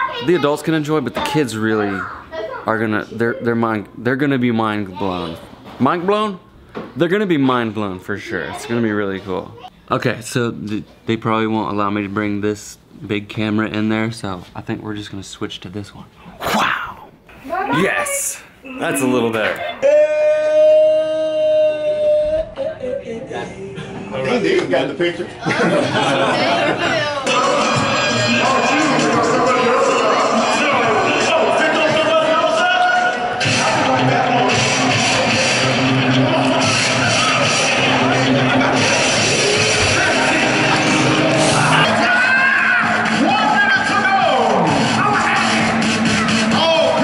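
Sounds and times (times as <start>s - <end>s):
murmur of large crowd: 17.5s - 47.0s
music over public address: 27.2s - 47.0s.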